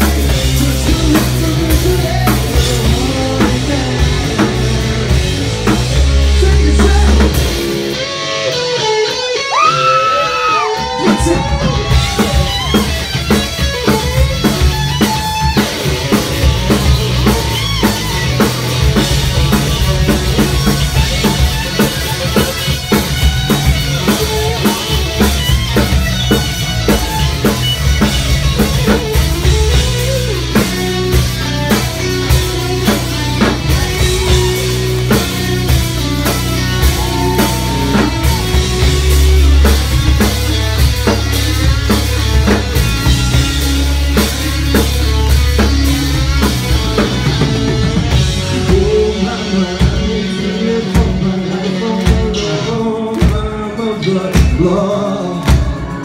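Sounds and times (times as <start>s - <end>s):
drums and bass beat: 0.0s - 56.0s
electric guitar lead notes: 0.0s - 56.0s.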